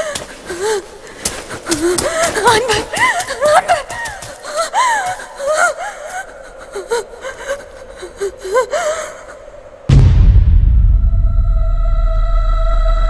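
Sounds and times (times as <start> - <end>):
woman sobbing cries: 1.7 - 9.6
low rumbling music: 9.9 - 13.0.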